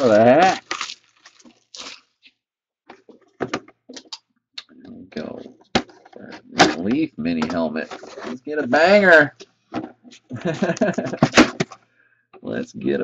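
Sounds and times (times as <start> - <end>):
plastic wrap crinkling: 0.0 - 2.3.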